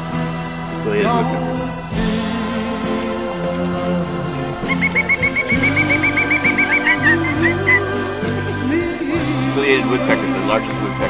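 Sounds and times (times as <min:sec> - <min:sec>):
background music: 0:00.0 - 0:11.0
woodpecker call notes: 0:02.4 - 0:08.7.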